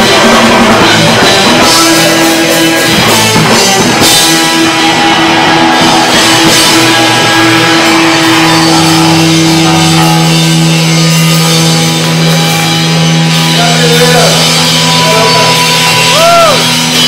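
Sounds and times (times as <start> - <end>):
distorted electric guitars: 0.0 - 17.0
drum kit: 0.0 - 17.0.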